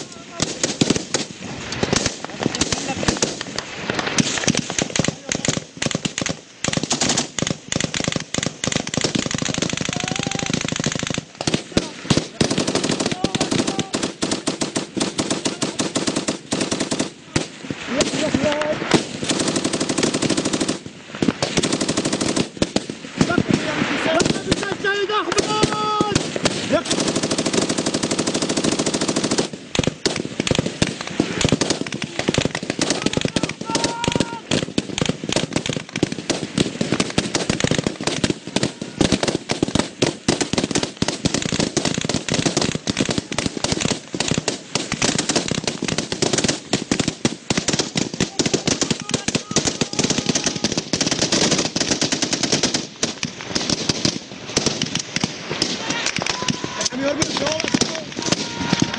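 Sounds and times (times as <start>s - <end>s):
voices: 0.0s - 0.9s, 2.2s - 3.2s, 4.9s - 5.7s, 9.4s - 10.7s, 11.4s - 14.2s, 15.3s - 16.1s, 17.2s - 18.9s, 23.2s - 27.0s, 31.9s - 34.6s, 48.0s - 50.8s, 55.7s - 58.9s
machine gun automatic fire: 0.0s - 58.9s.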